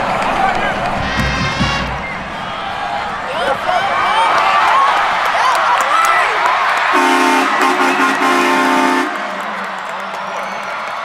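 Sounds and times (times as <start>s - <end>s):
brass band fanfare: 1.0s - 2.6s, 6.9s - 9.8s.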